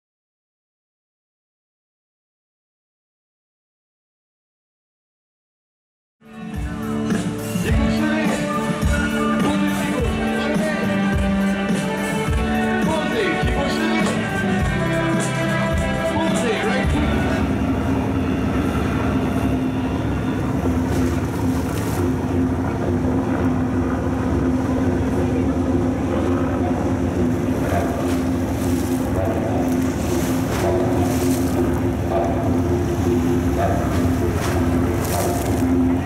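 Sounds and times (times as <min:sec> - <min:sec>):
boat engine droning: 0:06.2 - 0:36.0.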